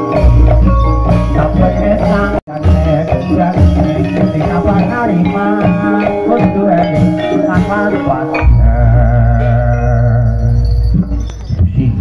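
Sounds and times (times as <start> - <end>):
gamelan music: 0.0 - 12.0.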